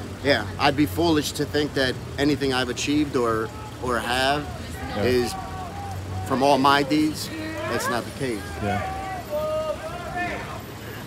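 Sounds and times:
city street noise: 0:00.0 - 0:11.0
people talking: 0:00.2 - 0:10.7.

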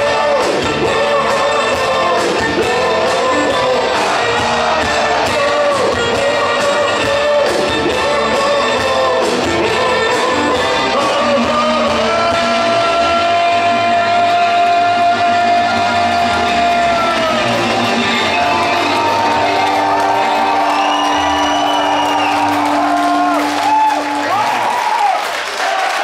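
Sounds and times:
rock band playing: 0:00.0 - 0:24.7.

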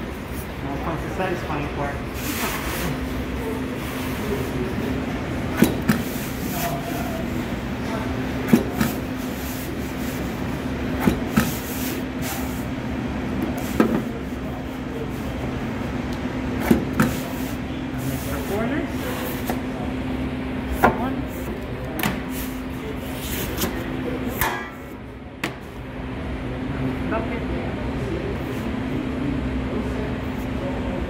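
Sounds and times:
workshop machinery hum: 0:00.0 - 0:31.0.

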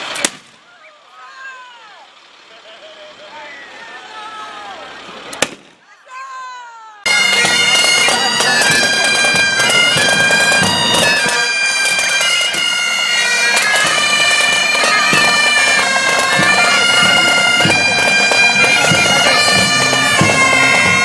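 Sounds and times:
bagpipe band playing: 0:07.0 - 0:21.0.

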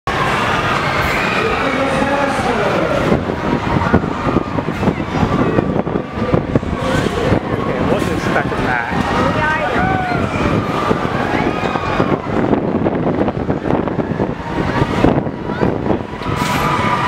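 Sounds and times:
wind buffeting microphone: 0:00.1 - 0:17.0.

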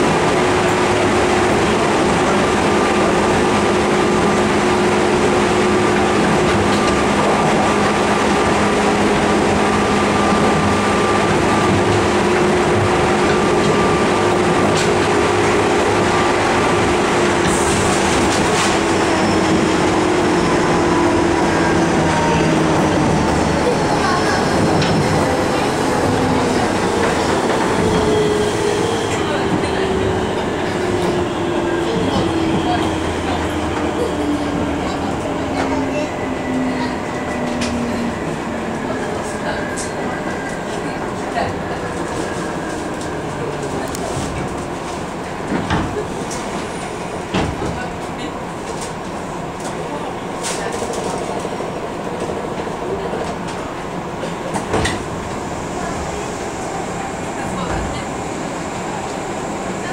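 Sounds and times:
train wheels rumbling on rail: 0:00.0 - 0:59.9.

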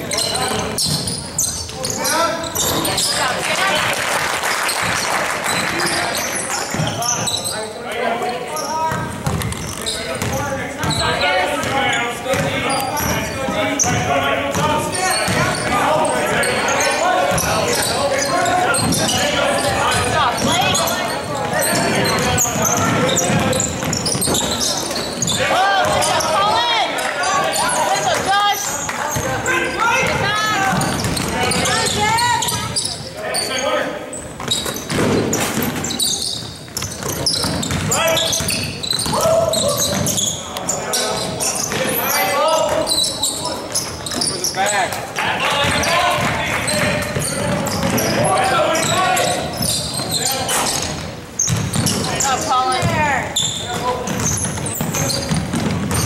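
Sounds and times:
basketball bouncing on hardwood: 0:08.9 - 0:11.0, 0:11.6 - 0:13.1, 0:21.4 - 0:24.6, 0:30.0 - 0:32.0, 0:36.8 - 0:39.3, 0:45.6 - 0:48.2, 0:51.5 - 0:52.2, 0:52.8 - 0:53.2, 0:53.8 - 0:56.0
people calling out: 0:37.4 - 0:50.5.

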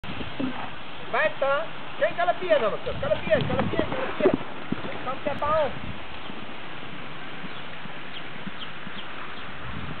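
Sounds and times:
horse hoofbeats on grass: 0:02.2 - 0:10.0.

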